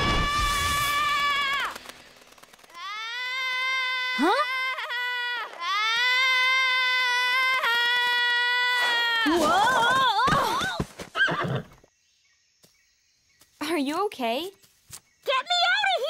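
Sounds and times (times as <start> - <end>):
cartoon girl screaming: 0.0 - 1.8, 2.7 - 11.4.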